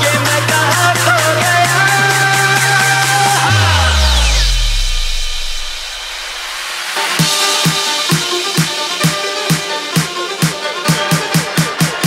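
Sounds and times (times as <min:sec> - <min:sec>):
deep bass note sliding down: 0:02.6 - 0:07.0
high falling sweep: 0:02.6 - 0:08.6.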